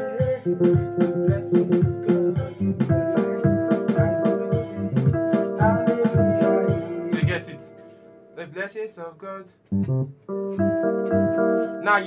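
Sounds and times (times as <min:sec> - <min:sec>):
electronic keyboard groove: 0:00.0 - 0:08.4, 0:09.7 - 0:12.0.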